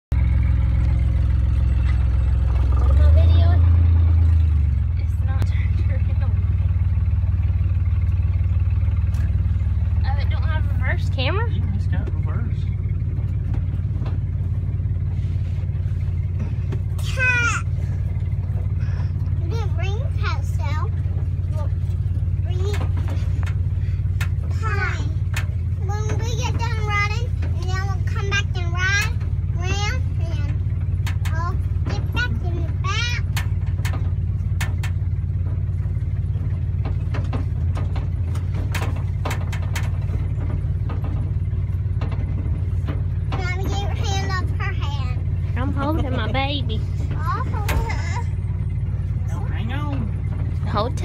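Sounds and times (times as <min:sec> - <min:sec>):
car engine drone from cabin: 0:00.1 - 0:51.0
small children's voices: 0:02.9 - 0:03.9, 0:16.9 - 0:17.9, 0:19.3 - 0:23.4, 0:24.4 - 0:33.4, 0:43.3 - 0:45.5, 0:47.0 - 0:48.5.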